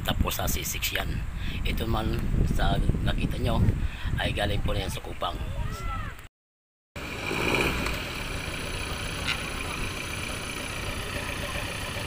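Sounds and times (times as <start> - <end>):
vehicle engine and road rumble: 7.0 - 12.0.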